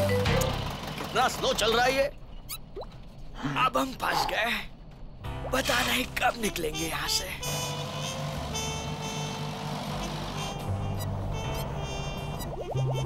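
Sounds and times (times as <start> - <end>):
cartoon background music: 5.3 - 13.0.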